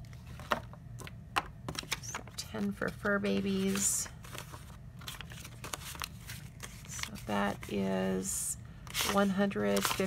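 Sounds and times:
paper bills clicking and tapping: 8.9 - 10.0.

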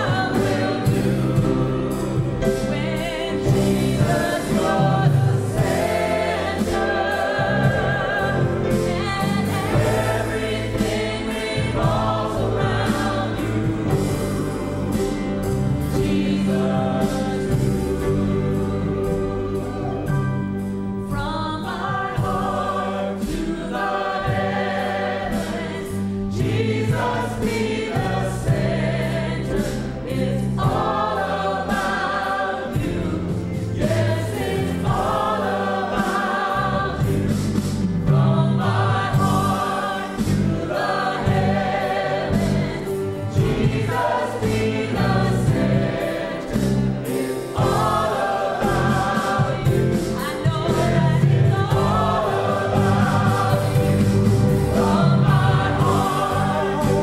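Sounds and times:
choir singing: 0.0 - 57.0
drums: 0.0 - 57.0
keyboard: 0.0 - 57.0.

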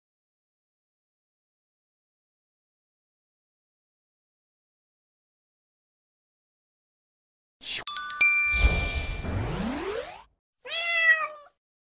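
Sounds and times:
whoosh with rising sweep: 7.7 - 10.3
bright dings: 7.8 - 9.5
cat meow: 10.6 - 11.6.

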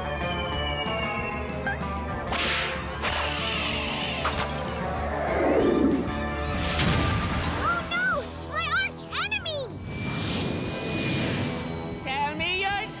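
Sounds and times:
cartoon background music: 0.0 - 13.0.

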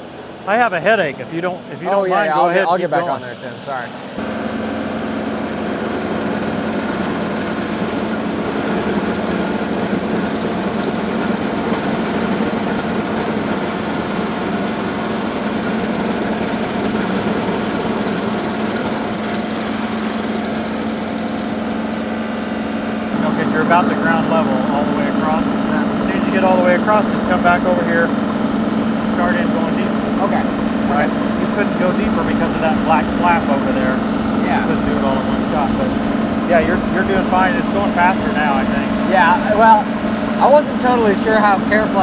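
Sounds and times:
tractor diesel engine running: 0.0 - 42.0
stump grinder cutting wood: 4.2 - 42.0.

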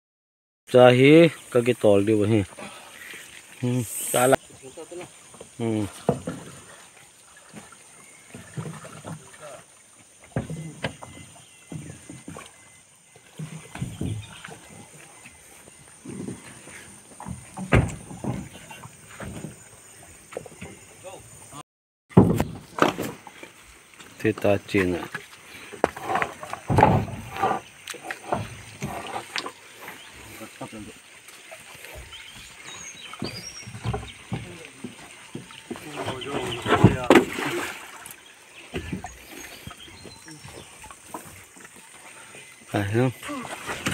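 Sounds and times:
wooden planks knocking: 22.1 - 23.2, 25.8 - 27.6
men calling out: 42.7 - 43.7.

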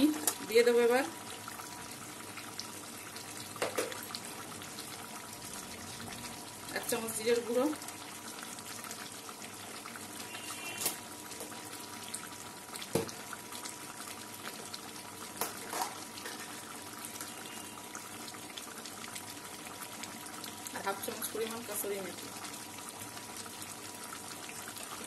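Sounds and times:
curry bubbling in pan: 0.0 - 25.0.

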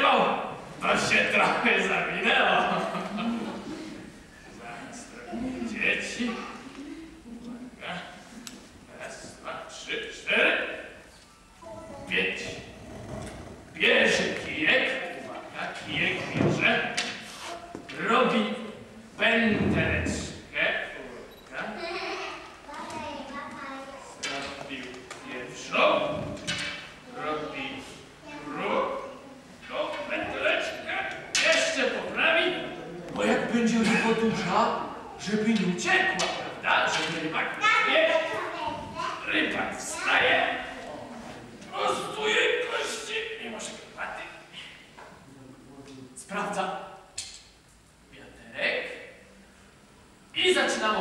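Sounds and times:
indistinct voices in echoing hall: 0.0 - 51.0.

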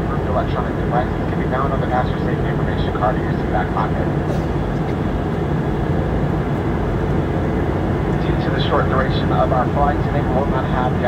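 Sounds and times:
aircraft cabin engine drone: 0.0 - 11.0
low rumble: 0.0 - 11.0.

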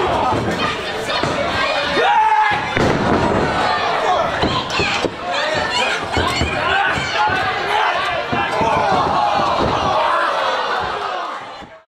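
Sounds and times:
people shouting: 0.0 - 11.7
crowd noise: 0.0 - 11.9.

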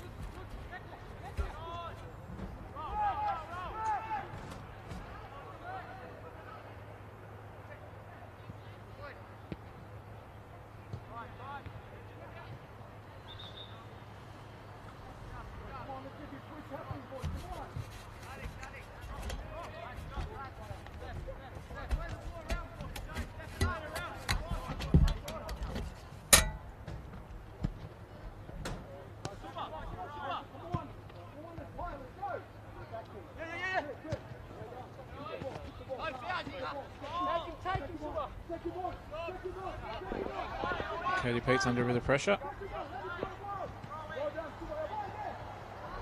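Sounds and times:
players calling out: 29.2 - 46.0.

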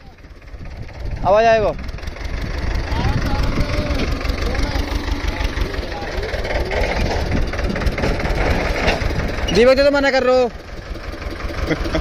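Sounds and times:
tractor diesel engine running: 0.0 - 12.0
voices calling: 0.0 - 12.0.

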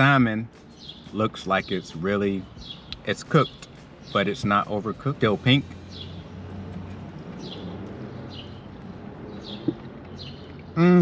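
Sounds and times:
bird chirping: 0.0 - 10.9.

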